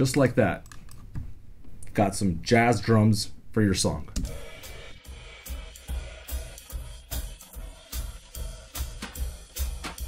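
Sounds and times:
jazz drum kit beat: 4.2s - 10.0s.

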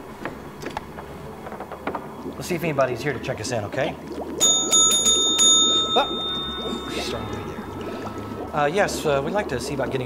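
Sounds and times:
desk service bell ringing: 4.4s - 7.8s.

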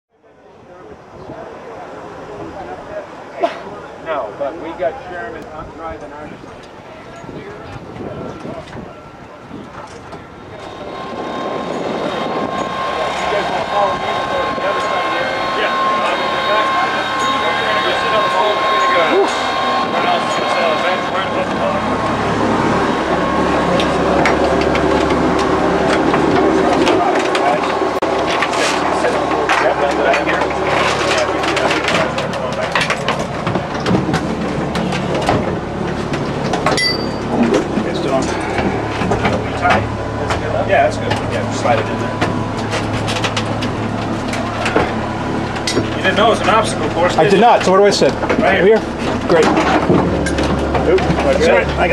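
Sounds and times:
aircraft radial engines droning: 0.1s - 51.9s.

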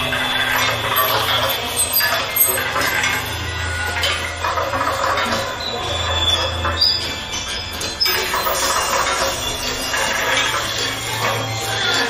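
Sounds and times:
thin high tones: 0.0s - 12.0s.

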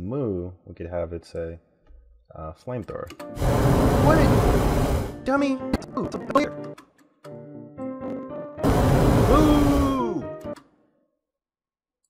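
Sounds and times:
flamethrower rush of flame: 3.4s - 5.2s, 8.6s - 10.1s.

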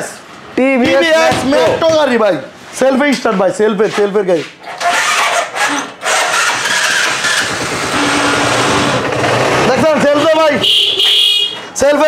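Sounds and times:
man talking: 0.0s - 4.6s, 9.7s - 10.7s, 11.7s - 12.0s
motorcycle engine starting and running: 4.7s - 10.6s.

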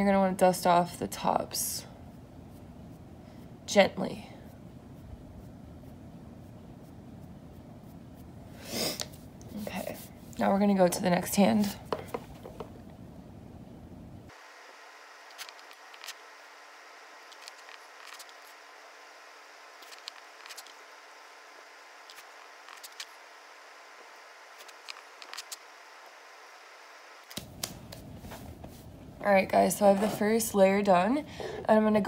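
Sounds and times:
thin steady hiss: 2.1s - 31.8s.

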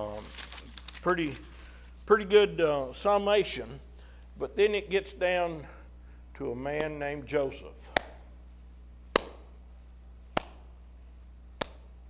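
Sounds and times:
slow hand claps: 9.1s - 9.5s, 10.3s - 10.7s, 11.6s - 11.9s.

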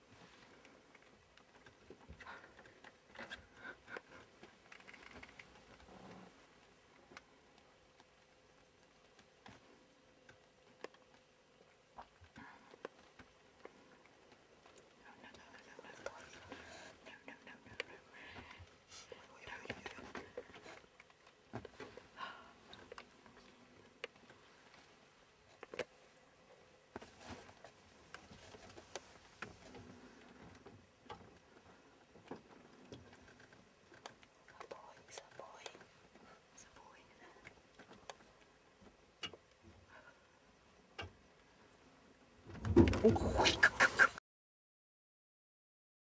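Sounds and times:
people whispering: 15.0s - 20.8s.

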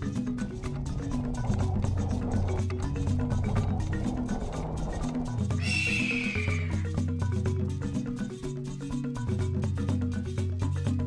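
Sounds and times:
marimba-like background music: 0.0s - 11.0s
horse whinny sound effect: 5.6s - 6.9s.

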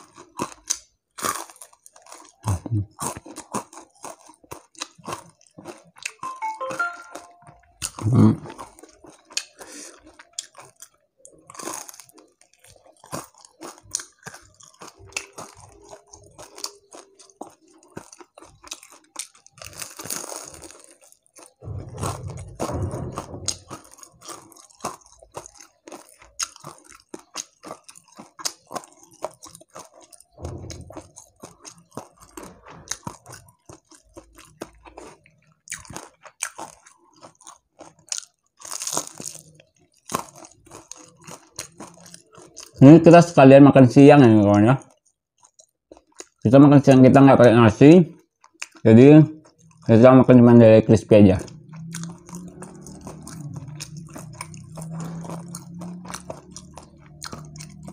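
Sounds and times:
chewing crispy fried fish: 0.0s - 57.9s.

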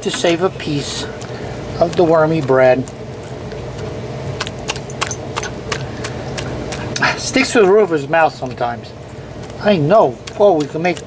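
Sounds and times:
low background hum: 0.0s - 11.0s
dog chewing and smacking: 0.6s - 7.9s.

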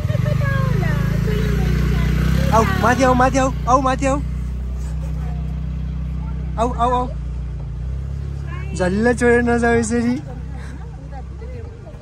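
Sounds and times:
motor scooter engine running: 0.0s - 12.0s.

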